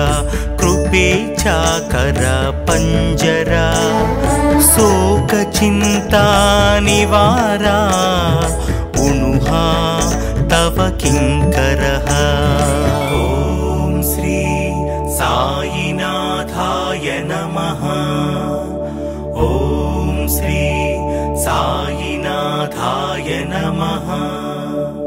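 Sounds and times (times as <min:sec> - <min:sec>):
low bass tone: 0:00.0 - 0:15.9
devotional song: 0:00.0 - 0:25.0
steady drone: 0:03.6 - 0:05.2.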